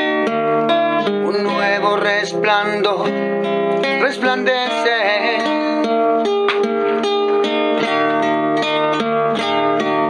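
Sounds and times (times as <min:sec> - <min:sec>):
plucked string instruments: 0:00.0 - 0:10.0.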